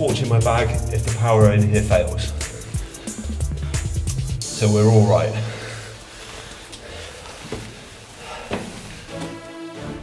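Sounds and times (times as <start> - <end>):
footsteps on stone steps: 6.3 - 9.5.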